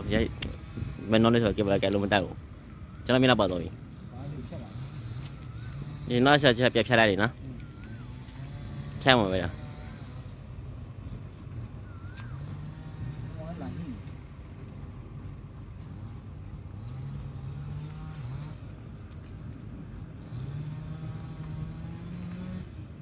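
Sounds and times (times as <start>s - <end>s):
vehicle engine accelerating: 0.0s - 23.0s.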